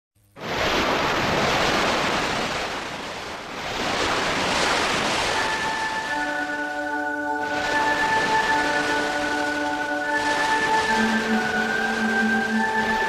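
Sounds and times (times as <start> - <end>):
ocean waves rushing: 0.4 - 13.0
sustained music tones: 5.2 - 13.0.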